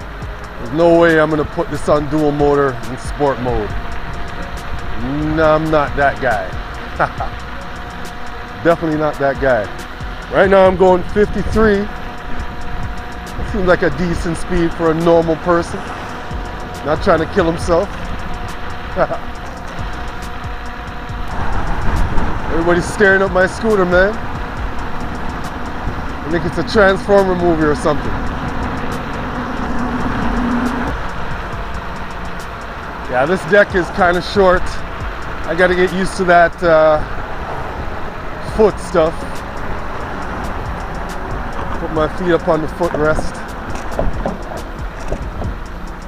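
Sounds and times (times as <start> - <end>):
electric scooter whine: 0.0 - 46.0
person laughing: 6.8 - 7.5
wind rumble on microphone: 9.4 - 46.0.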